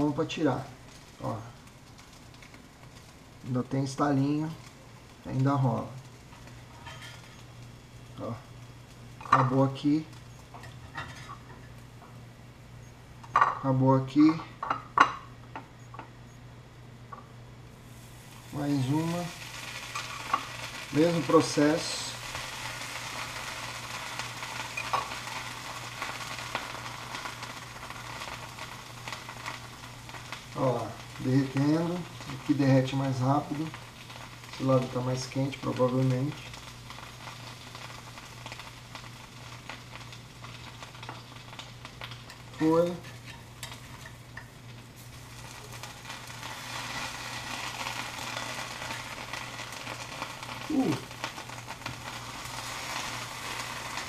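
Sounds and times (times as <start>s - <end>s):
bread sizzling in sandwich press: 0.0s - 16.2s, 17.0s - 54.0s
fat crackling and popping: 0.0s - 54.0s.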